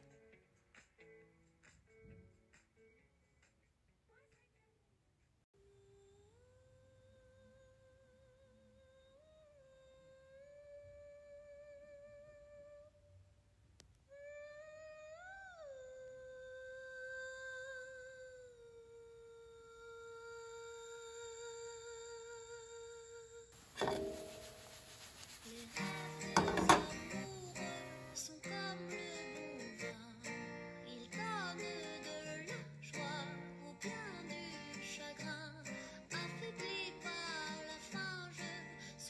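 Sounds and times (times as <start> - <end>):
person humming slow melody: 5.6 - 13.0, 14.1 - 24.5.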